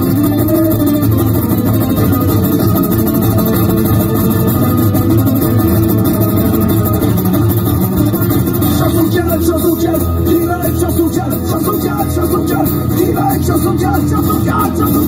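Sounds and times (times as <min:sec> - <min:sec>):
acoustic guitars playing: 0:00.0 - 0:15.0.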